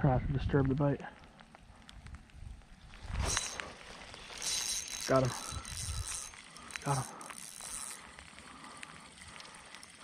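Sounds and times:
faint clicks: 0:00.6 - 0:10.0
fishing reel whirring: 0:03.1 - 0:10.0.

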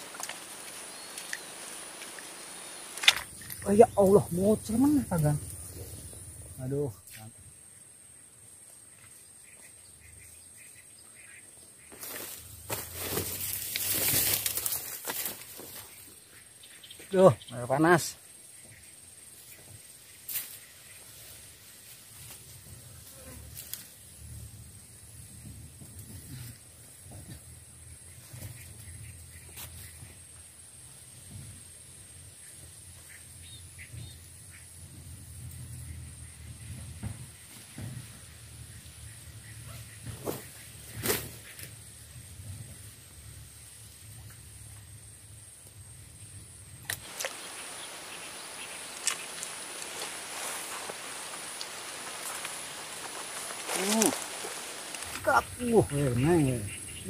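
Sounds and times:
steady hiss: 0:00.0 - 0:09.6, 0:10.7 - 0:57.0.

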